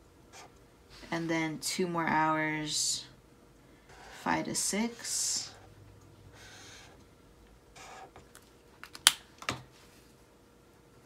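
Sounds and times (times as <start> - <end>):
highlighter scratching on paper: 0.3 - 0.5, 3.9 - 5.7, 6.3 - 7.0, 7.8 - 8.2.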